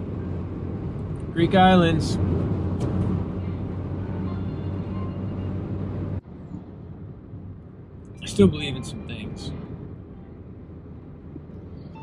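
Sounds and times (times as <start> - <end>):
car engine and tyre drone: 0.0 - 12.0.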